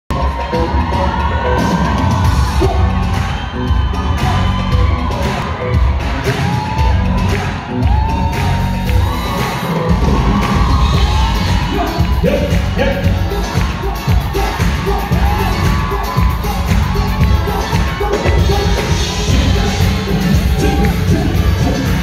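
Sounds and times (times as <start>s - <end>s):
audience cheering and shouting: 0.1s - 22.0s.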